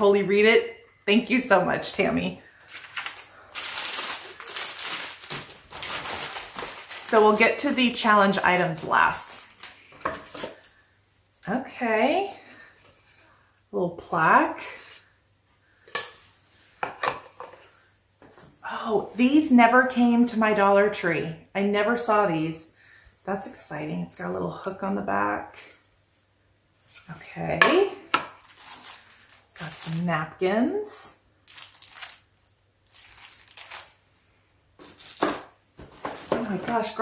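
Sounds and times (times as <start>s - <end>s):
plastic packaging rustling: 2.5s - 10.8s, 28.3s - 30.1s, 31.4s - 34.0s, 34.8s - 37.0s.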